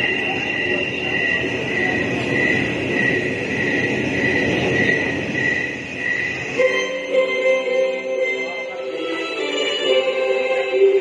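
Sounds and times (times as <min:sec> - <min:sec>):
crowd chattering: 0:00.0 - 0:11.0
faint high pulsing tone: 0:00.0 - 0:11.0.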